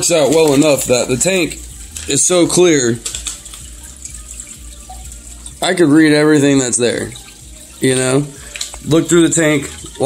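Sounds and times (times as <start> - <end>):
water trickling and splashing: 0.0 - 10.0.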